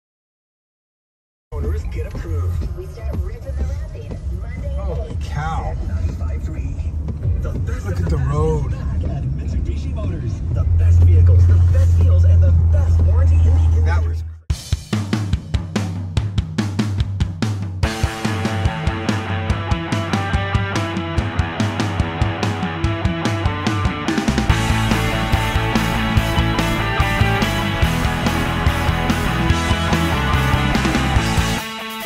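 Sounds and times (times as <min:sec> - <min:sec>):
rock music with drum beat: 0:01.5 - 0:11.4, 0:14.5 - 0:32.0
car road and engine rumble: 0:01.5 - 0:14.5.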